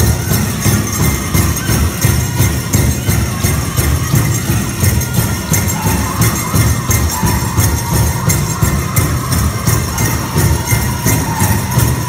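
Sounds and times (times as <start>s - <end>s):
ankle bells jingling: 0.0s - 12.0s
big drum steady beat: 0.0s - 12.0s
high singing voices: 0.0s - 12.0s.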